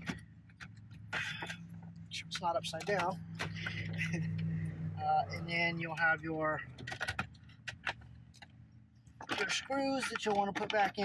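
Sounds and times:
clicks and rattles of car stereo: 0:00.0 - 0:04.7, 0:05.3 - 0:11.0.

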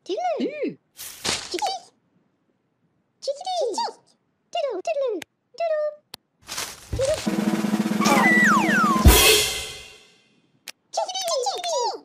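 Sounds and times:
rapid drum roll: 0:07.0 - 0:10.0
sliding whistle falling in pitch: 0:08.0 - 0:09.2.

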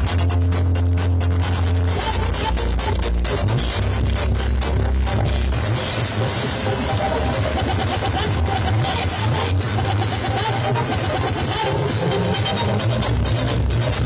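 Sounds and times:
bass-heavy electronic dance music: 0:00.0 - 0:14.0.

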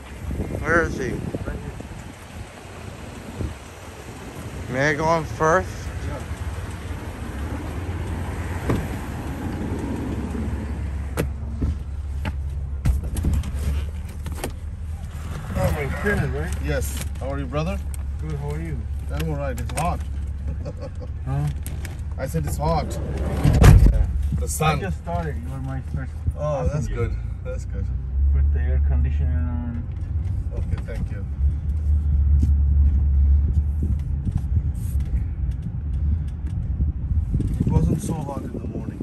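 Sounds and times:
street noise: 0:00.0 - 0:39.0
vehicle interior hum: 0:00.0 - 0:39.0
people talking: 0:00.5 - 0:01.9, 0:04.6 - 0:06.3, 0:15.5 - 0:21.6, 0:22.2 - 0:29.8, 0:30.5 - 0:31.3, 0:37.7 - 0:39.0
car door shutting: 0:08.5 - 0:09.7, 0:21.6 - 0:24.7.

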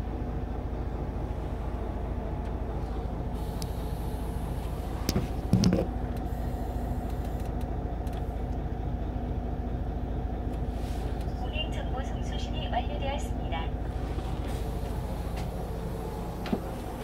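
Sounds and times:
bus engine idling: 0:00.0 - 0:17.0.

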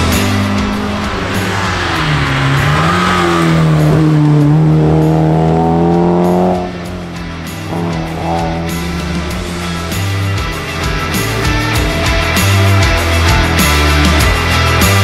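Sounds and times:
music: 0:00.0 - 0:15.0
rally car engine accelerating: 0:00.0 - 0:15.0.

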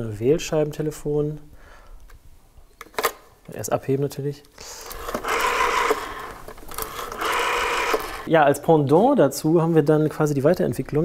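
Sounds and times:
rotary telephone dial whirring: 0:04.9 - 0:08.3.

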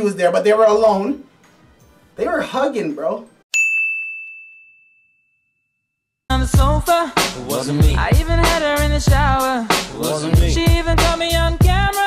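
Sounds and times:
high bell-like ding: 0:03.5 - 0:06.0.

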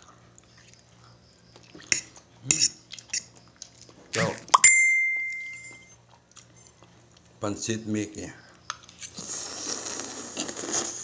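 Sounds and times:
eating sounds: 0:00.0 - 0:04.5, 0:08.7 - 0:11.0.

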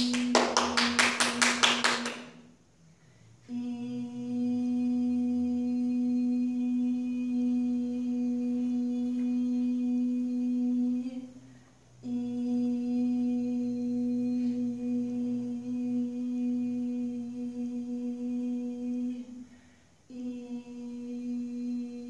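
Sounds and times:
person breathing: 0:02.8 - 0:03.5, 0:19.4 - 0:20.1
person humming a long note: 0:03.4 - 0:11.4, 0:12.0 - 0:19.5, 0:20.1 - 0:22.0.

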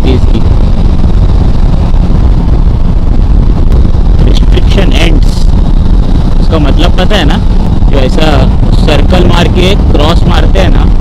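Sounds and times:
motorcycle running: 0:00.0 - 0:11.0
wind buffeting microphone: 0:00.0 - 0:11.0.

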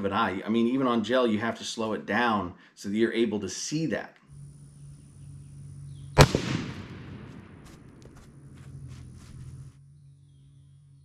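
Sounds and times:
rifle shot: 0:06.2 - 0:07.9.

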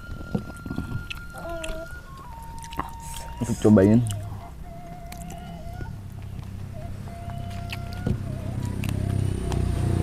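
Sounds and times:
steady low hum: 0:00.0 - 0:10.0
people chewing with wet mouth clicks: 0:00.2 - 0:06.6, 0:07.2 - 0:09.6.

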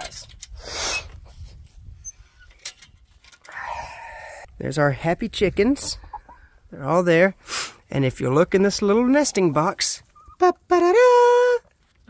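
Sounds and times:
hens calling: 0:05.6 - 0:06.6.

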